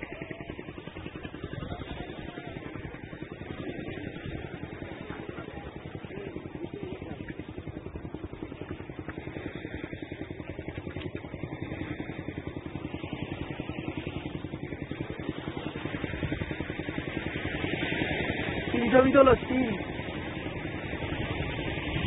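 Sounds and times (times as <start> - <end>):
engine running: 0.0 - 22.0.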